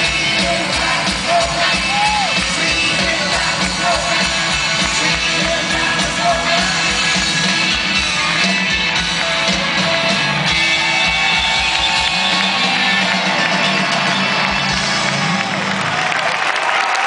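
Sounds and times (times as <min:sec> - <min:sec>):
live rock band playing: 0:00.0 - 0:16.3
crowd noise: 0:00.0 - 0:17.0.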